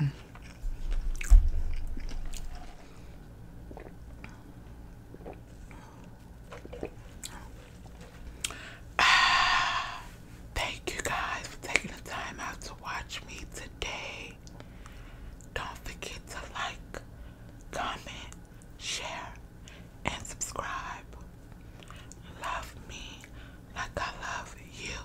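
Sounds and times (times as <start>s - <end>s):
person whispering: 22.3s - 25.0s.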